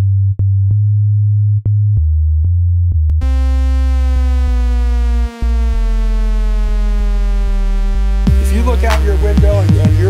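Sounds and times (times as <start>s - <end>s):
heavy deep bass: 0.0s - 10.0s
buzzy synthesizer tone sliding down: 3.2s - 10.0s.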